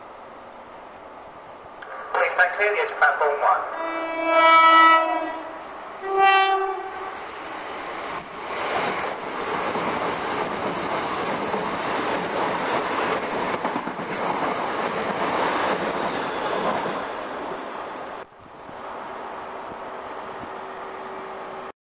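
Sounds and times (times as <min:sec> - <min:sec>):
train rushing past: 0:00.0 - 0:21.7.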